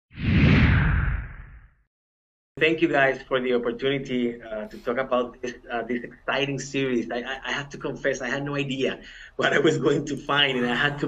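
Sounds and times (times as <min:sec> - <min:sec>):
whoosh with deep rumble: 0:00.2 - 0:01.8.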